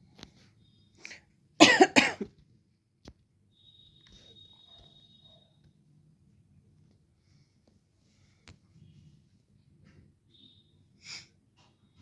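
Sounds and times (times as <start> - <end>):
person coughing: 1.6 - 2.3.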